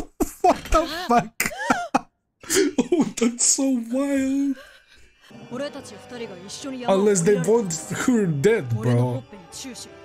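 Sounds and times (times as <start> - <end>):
background music: 0.9 - 10.0
man's voice: 2.5 - 4.6, 6.9 - 9.3.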